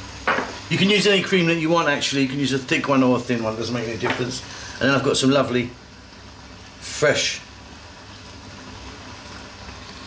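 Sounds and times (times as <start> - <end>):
sauce simmering in a wok: 0.0 - 1.5, 2.6 - 10.0.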